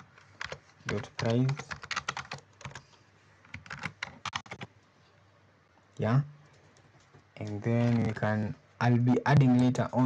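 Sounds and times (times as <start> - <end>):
computer keyboard typing: 0.0 - 4.7.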